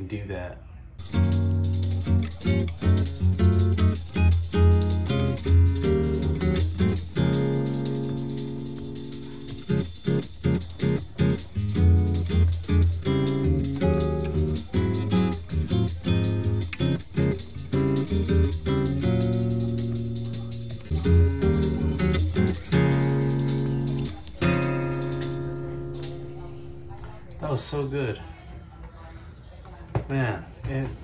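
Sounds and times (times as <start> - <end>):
nylon-string guitar strumming chords: 1.0 - 27.4
light percussion: 1.0 - 27.5.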